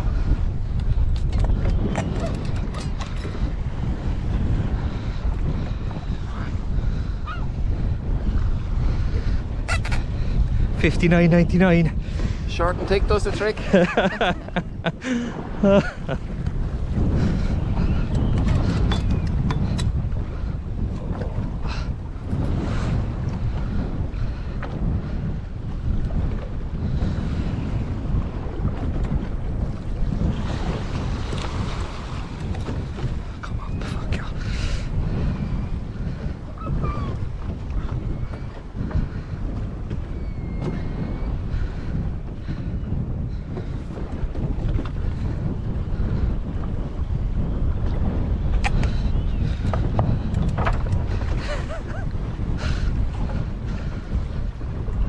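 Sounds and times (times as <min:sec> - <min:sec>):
sea wash: 0:00.0 - 0:55.0
wind buffeting microphone: 0:00.0 - 0:55.0.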